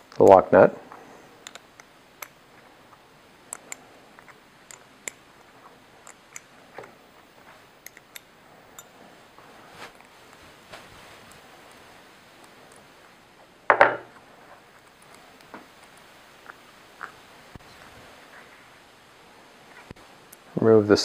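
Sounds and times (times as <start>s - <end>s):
small metallic clicks: 1.4s - 2.4s, 3.5s - 5.2s, 6.0s - 7.0s, 7.8s - 8.9s
wrench clattering on table: 13.7s - 14.1s.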